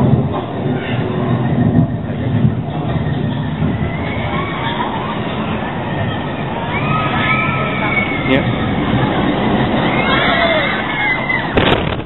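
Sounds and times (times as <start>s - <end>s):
roller coaster wheels rumbling on rail: 0.0s - 12.0s.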